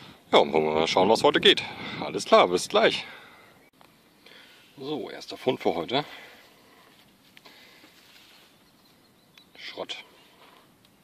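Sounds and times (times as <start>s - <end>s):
hand picking through grass: 6.9s - 9.0s.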